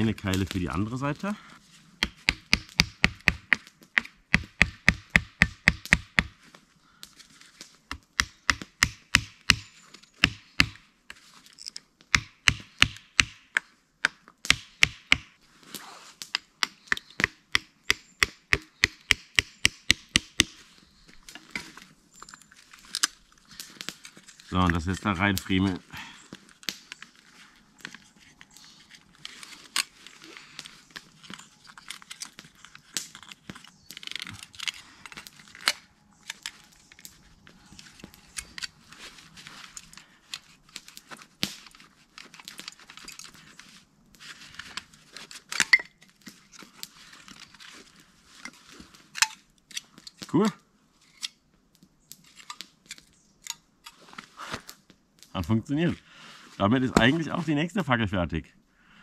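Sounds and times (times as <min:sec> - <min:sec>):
wooden clicks and cracks: 0:07.0 - 0:15.3, 0:16.2 - 0:25.0, 0:26.3 - 0:43.8, 0:51.1 - 0:55.3
wood scraping: 0:55.7 - 0:57.6.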